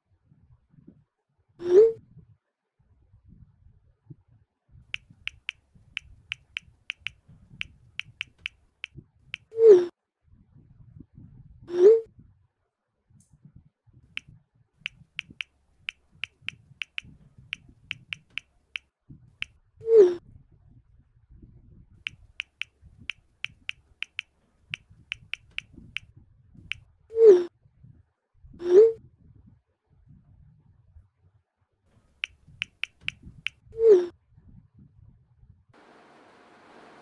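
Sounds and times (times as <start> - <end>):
light keyboard taps: 5.0 - 7.2, 8.0 - 8.6, 14.9 - 17.1, 17.9 - 18.5, 22.1 - 24.3, 25.1 - 26.0, 32.2 - 33.5.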